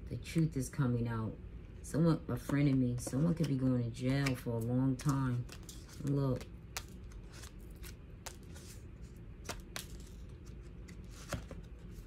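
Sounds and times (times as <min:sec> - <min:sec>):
cards clicking and sliding on table: 0:05.0 - 0:08.8, 0:09.4 - 0:12.0.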